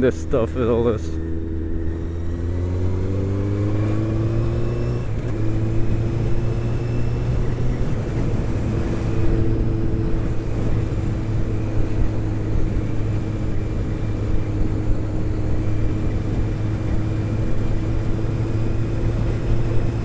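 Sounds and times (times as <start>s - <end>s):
motorcycle engine cruising: 0.0s - 20.0s
wind rushing on microphone: 1.2s - 20.0s.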